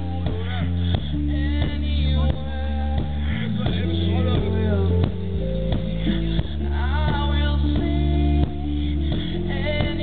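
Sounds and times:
bass guitar: 0.0 - 10.0
keyboards: 0.0 - 10.0
man singing: 0.0 - 10.0.

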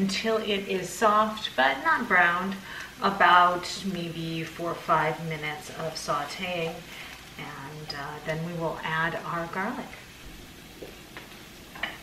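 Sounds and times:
onion sizzling in pan: 0.0 - 12.0.

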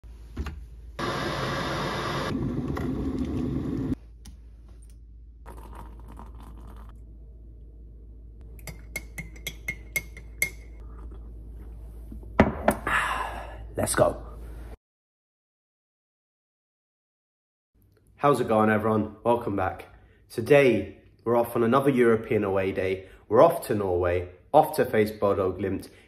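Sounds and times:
electric kettle boiling: 1.0 - 4.0
water poured into ceramic mug: 5.4 - 7.0
spoon clinking in mug: 8.6 - 10.8.

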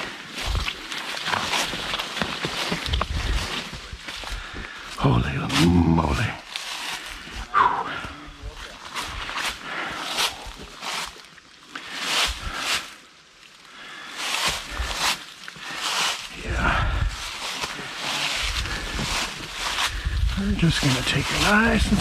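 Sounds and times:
brush rustling and scraping: 0.0 - 4.2, 14.2 - 16.3, 17.0 - 22.0
footsteps crunching dry leaves: 0.0 - 7.5, 8.4 - 22.0.

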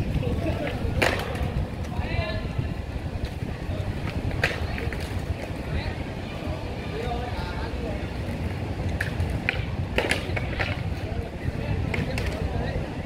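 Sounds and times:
skates clacking on ground: 0.0 - 2.2, 3.2 - 5.8, 8.2 - 12.7
faint voices: 0.0 - 13.0
skate wheels rolling on stone: 0.0 - 13.0.

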